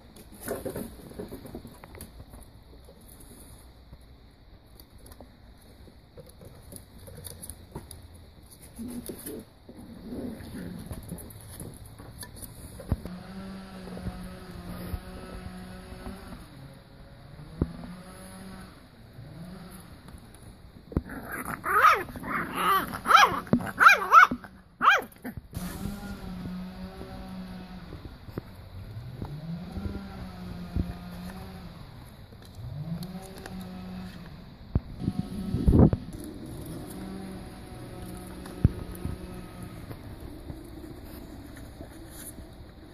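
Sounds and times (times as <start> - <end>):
puppies yapping and yelping: 21.3 - 25.3.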